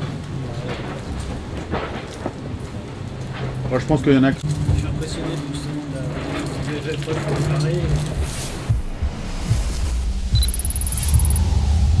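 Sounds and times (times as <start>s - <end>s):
deep rumble: 8.2s - 12.0s
very high electronic blips: 10.3s - 12.0s
short high beep: 10.4s - 11.5s.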